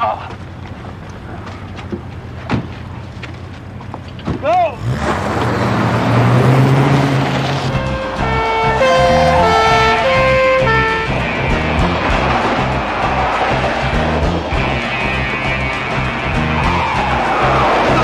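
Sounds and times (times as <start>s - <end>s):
car engine running hard: 0.0s - 18.0s
dramatic music: 4.9s - 18.0s.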